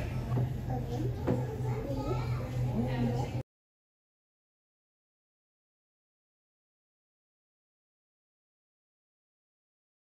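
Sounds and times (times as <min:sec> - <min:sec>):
children's chatter: 0:00.0 - 0:03.4.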